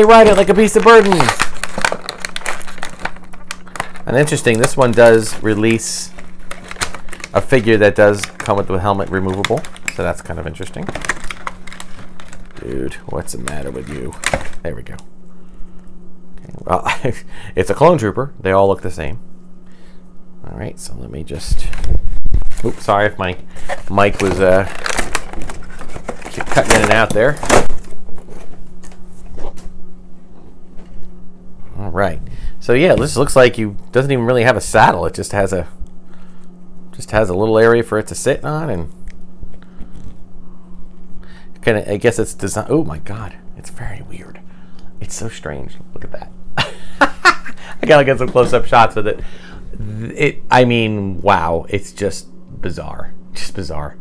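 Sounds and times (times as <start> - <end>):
packaging crinkling: 0.0 - 15.0, 21.5 - 29.6
low steady hum: 0.0 - 54.0.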